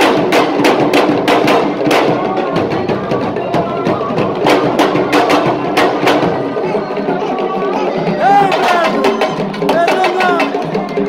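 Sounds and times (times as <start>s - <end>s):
lively drumming slapping strokes: 0.0s - 11.0s.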